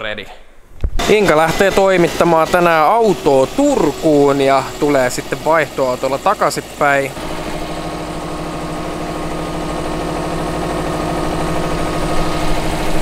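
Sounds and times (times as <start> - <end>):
car engine idling: 1.0 - 13.0.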